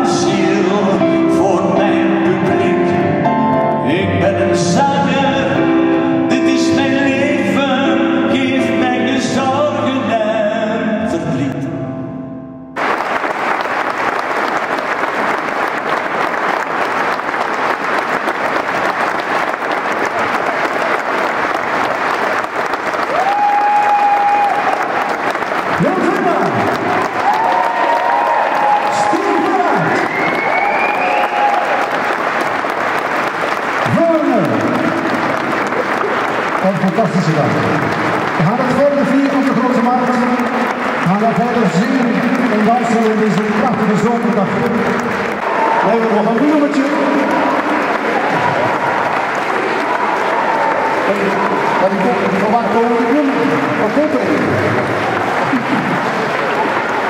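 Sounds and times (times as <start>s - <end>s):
audience applause: 12.8s - 57.0s
people talking: 36.6s - 37.7s, 38.4s - 44.8s, 45.9s - 47.4s, 51.1s - 54.6s.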